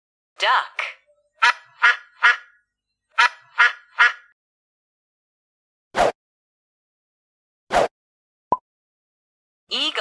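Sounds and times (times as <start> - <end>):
duck quacking: 1.4 - 2.6, 3.2 - 4.3.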